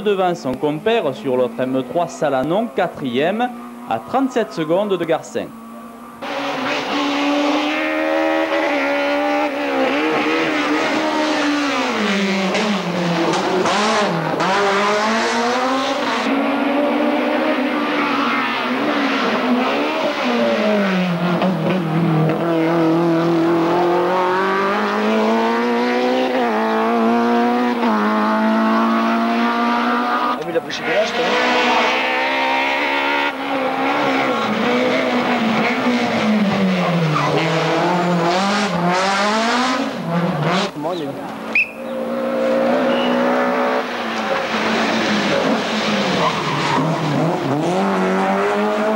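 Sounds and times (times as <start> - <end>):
rally car engines at full throttle: 0.0 - 48.9.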